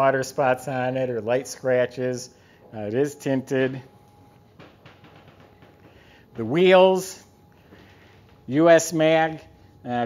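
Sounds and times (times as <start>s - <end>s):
room hum: 0.0s - 10.0s
faint footsteps on hard floor: 4.0s - 8.7s.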